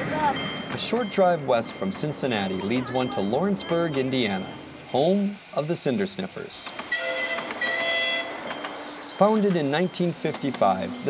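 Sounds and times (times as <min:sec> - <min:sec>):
miniature train horn chord: 0:06.9 - 0:08.4.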